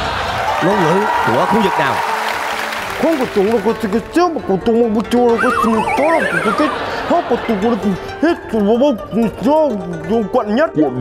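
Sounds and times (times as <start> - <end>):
horse whinny: 5.4 - 7.0.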